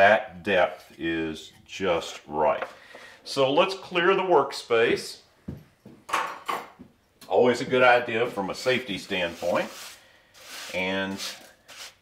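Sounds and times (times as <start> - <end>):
short scraping rustles: 9.1 - 12.0.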